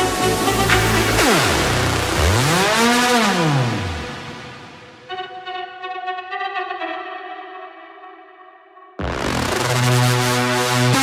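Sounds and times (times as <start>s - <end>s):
low electronic tone sweeping: 0.3s - 5.0s.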